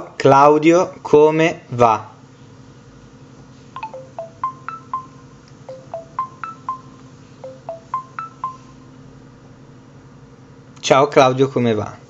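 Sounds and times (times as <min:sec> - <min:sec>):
faint steady hum: 0:02.3 - 0:10.8
phone chime: 0:03.8 - 0:08.9.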